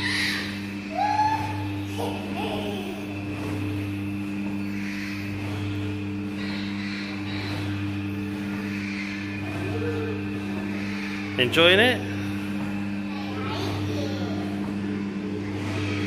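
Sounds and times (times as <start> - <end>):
child squealing: 0.0 - 3.1
kiddie ride electric hum: 0.0 - 16.0.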